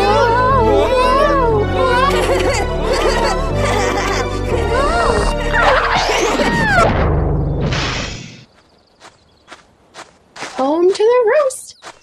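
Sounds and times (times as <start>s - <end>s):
cartoon music: 0.0s - 7.0s
person laughing: 0.6s - 6.8s
short crash: 5.8s - 8.5s.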